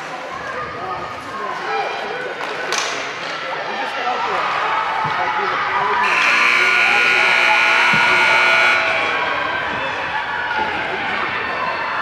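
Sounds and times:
scoreboard buzzer: 0:06.0 - 0:09.2.

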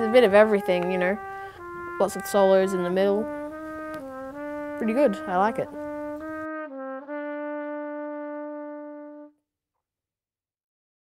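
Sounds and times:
brass music held notes: 0:00.0 - 0:09.4.

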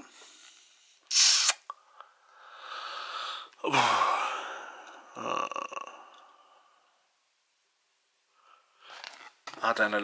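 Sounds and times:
long breath out: 0:01.8 - 0:05.1
sharp intake of breath: 0:02.3 - 0:04.9.

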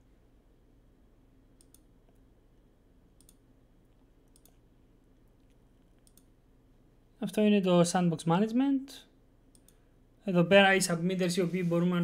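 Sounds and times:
computer mouse clicks: 0:01.6 - 0:04.7, 0:05.3 - 0:06.3, 0:09.5 - 0:09.8.

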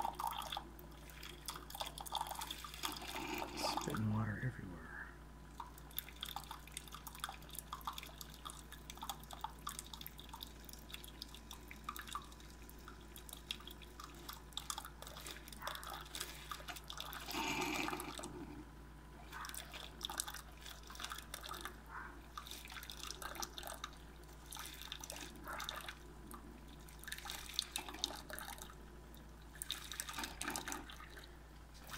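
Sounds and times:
coffee dripping into a mug: 0:00.0 - 0:04.0, 0:05.5 - 0:18.4
low machine hum: 0:00.0 - 0:31.9.

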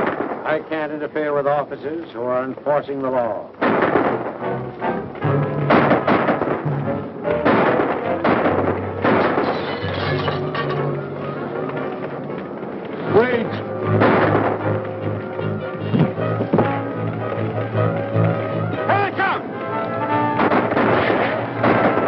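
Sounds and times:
gunshots: 0:00.0 - 0:01.7, 0:03.5 - 0:12.0, 0:12.9 - 0:22.0
dramatic background music: 0:03.6 - 0:22.0.

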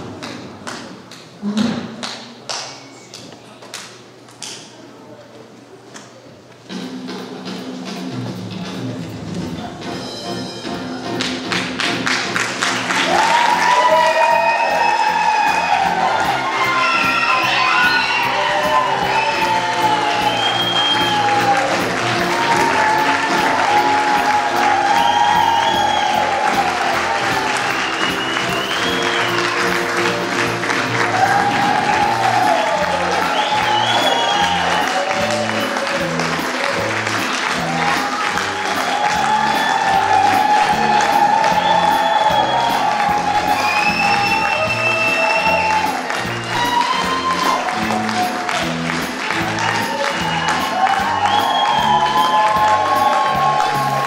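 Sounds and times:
music over pa system: 0:06.6 - 0:54.0
audience applauding and cheering: 0:10.8 - 0:54.0.

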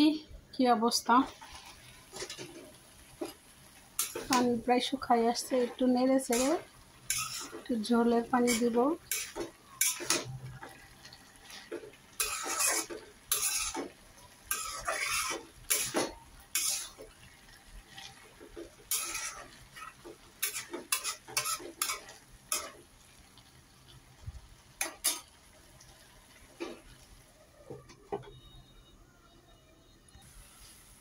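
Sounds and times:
metal spatula scraping a metal pan: 0:01.1 - 0:03.4, 0:04.0 - 0:04.6, 0:05.3 - 0:17.1, 0:17.8 - 0:22.8, 0:24.8 - 0:25.3.

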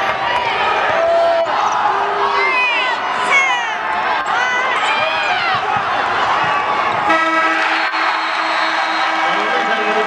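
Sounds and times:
arena crowd noise: 0:00.0 - 0:10.0
buzzy horn note: 0:07.1 - 0:10.0.

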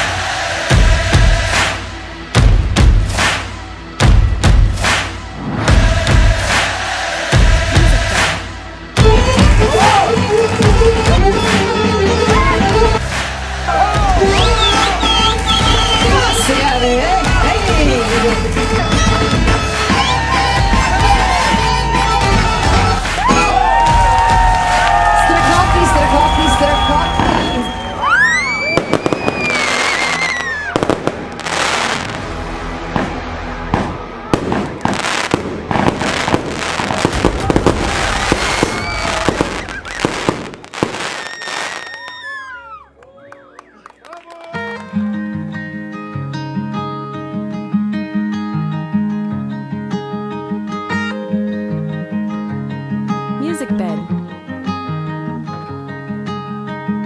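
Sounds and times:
slow song instrumental intro: 0:00.0 - 0:16.0, 0:44.6 - 0:57.0
dance music: 0:00.0 - 0:27.7
whistling rockets: 0:14.3 - 0:16.8, 0:26.0 - 0:32.2, 0:33.0 - 0:43.9
fireworks bangs and crackling: 0:20.6 - 0:42.7.

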